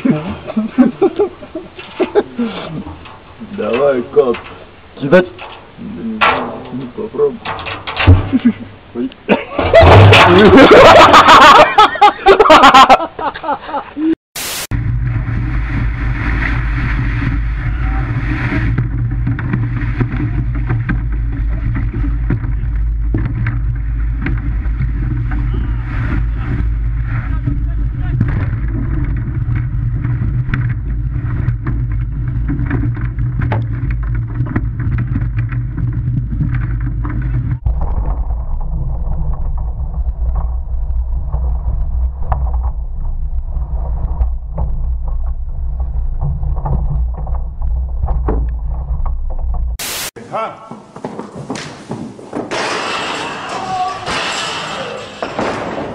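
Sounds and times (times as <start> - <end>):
surf: 14.4 - 50.2
wind on microphone: 14.7 - 49.8.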